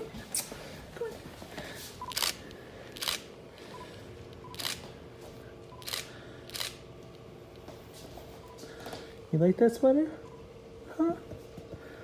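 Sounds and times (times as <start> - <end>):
camera shutter clicking: 2.1 - 2.4, 3.0 - 3.2, 4.5 - 4.8, 5.8 - 6.8.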